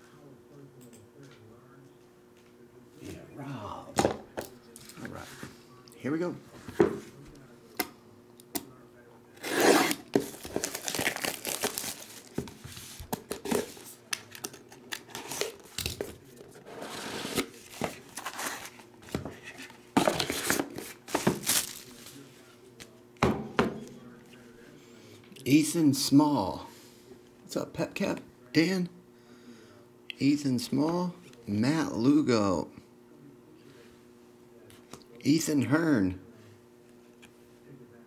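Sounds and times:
plastic shrink wrap crackling: 0:10.2 - 0:13.1.

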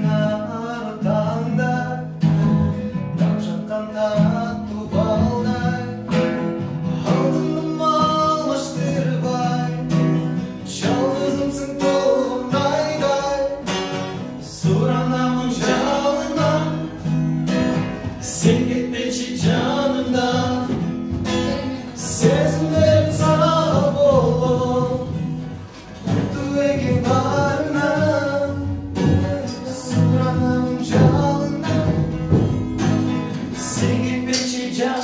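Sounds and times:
acoustic guitar strumming: 0:00.0 - 0:35.0
man singing: 0:00.0 - 0:35.0.

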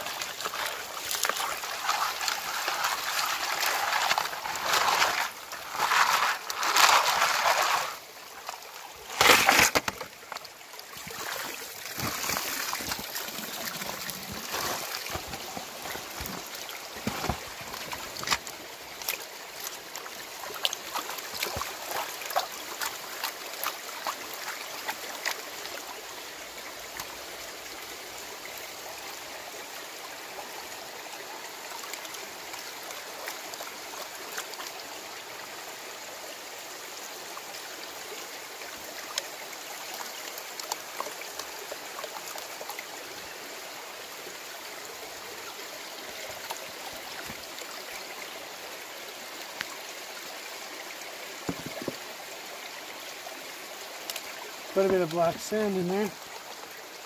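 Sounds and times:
creek water running and splashing: 0:00.0 - 0:57.0.

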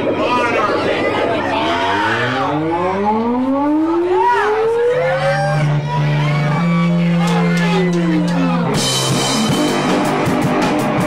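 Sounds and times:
voice-like call: 0:00.0 - 0:08.8
instrument tone gliding upward: 0:00.0 - 0:09.4.

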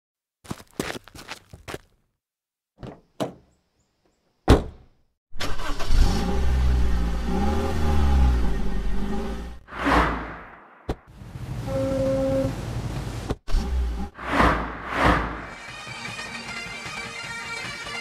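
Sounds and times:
car engine starting and revving: 0:05.4 - 0:10.6.

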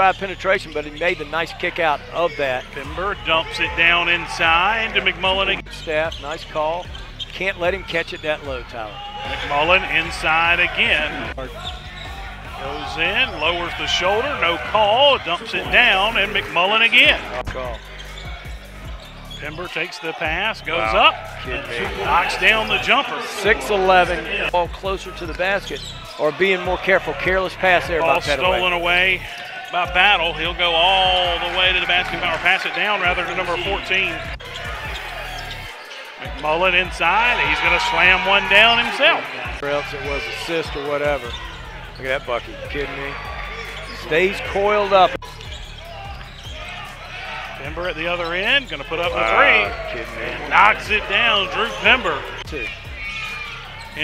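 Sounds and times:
faint voices: 0:07.5 - 0:54.0.

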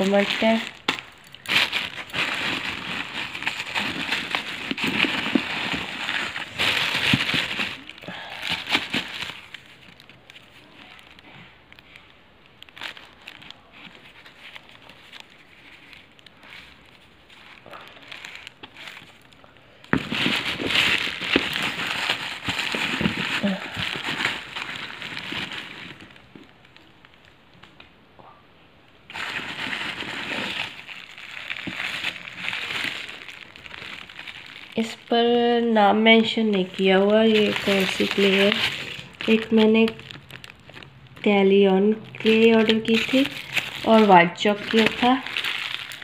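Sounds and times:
plastic bags crinkling: 0:00.0 - 0:27.6, 0:29.0 - 0:46.0.

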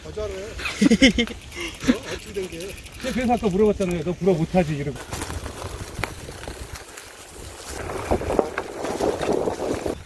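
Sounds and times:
bike tyres on leafy dirt trail: 0:00.0 - 0:10.0
wind rumbling on microphone: 0:02.8 - 0:10.0.

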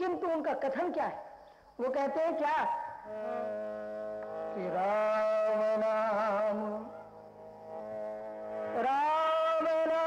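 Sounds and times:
sustained accompanying tone: 0:01.3 - 0:10.0
devotional singing: 0:04.2 - 0:07.2, 0:08.5 - 0:10.0.

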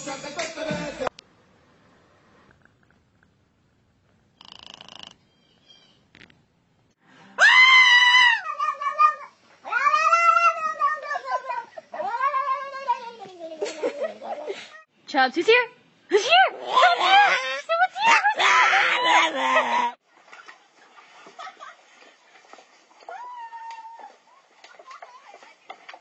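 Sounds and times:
cat yowling: 0:07.4 - 0:13.0.

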